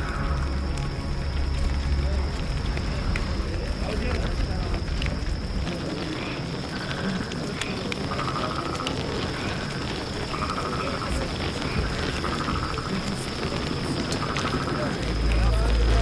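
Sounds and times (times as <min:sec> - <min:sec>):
steady high drone: 0:00.0 - 0:05.6
campfire crackling: 0:00.0 - 0:16.0
animal trilled calls: 0:06.0 - 0:15.3.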